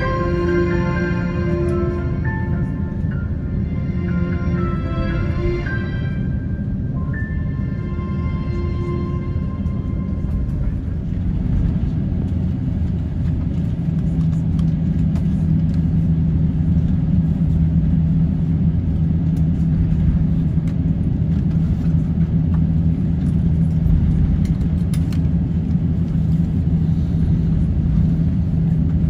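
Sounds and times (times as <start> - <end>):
aircraft cabin rumble and hum: 0.0 - 29.0.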